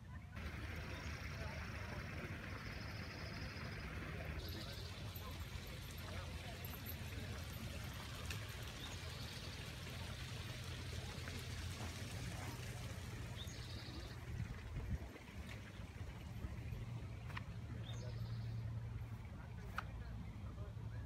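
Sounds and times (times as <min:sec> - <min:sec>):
faint distant voices: 0:00.0 - 0:21.0.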